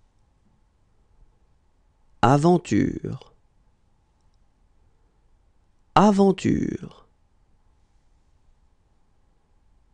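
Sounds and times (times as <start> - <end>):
man speaking: 2.2 - 3.4, 6.0 - 7.1
tiny clicks: 4.2 - 4.5.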